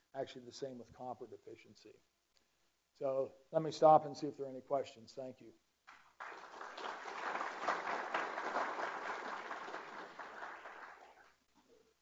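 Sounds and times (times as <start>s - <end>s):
audience applauding: 5.9s - 11.4s.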